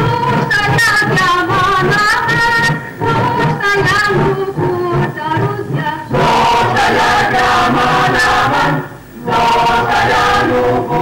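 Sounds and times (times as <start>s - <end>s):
mixed choir singing: 0.0s - 11.0s.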